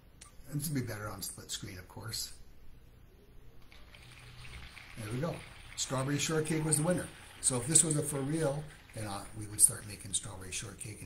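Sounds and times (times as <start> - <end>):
faint low hum: 0.0 - 11.0
soft hiss: 0.0 - 11.0.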